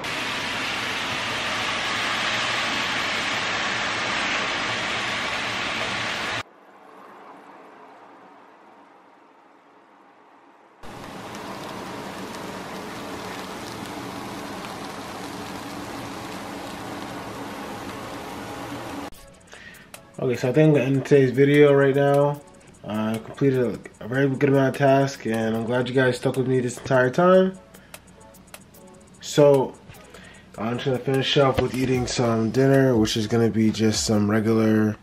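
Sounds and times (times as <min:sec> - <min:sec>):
food sizzling in a frying pan: 0:00.0 - 0:06.4, 0:10.8 - 0:19.2.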